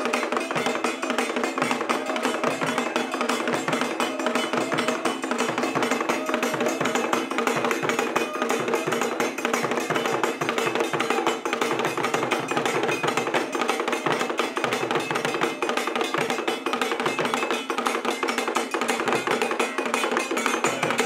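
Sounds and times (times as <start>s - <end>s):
drum ensemble playing fast rhythm: 0.0s - 21.0s.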